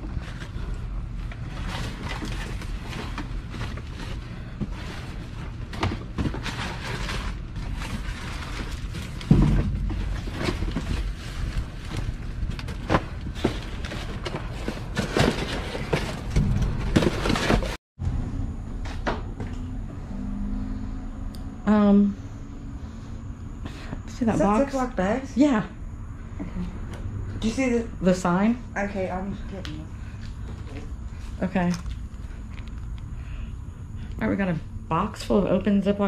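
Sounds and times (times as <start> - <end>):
rustling cardboard and plastic: 0.0 - 17.8
heavy thump: 9.3 - 11.1, 16.3 - 17.8.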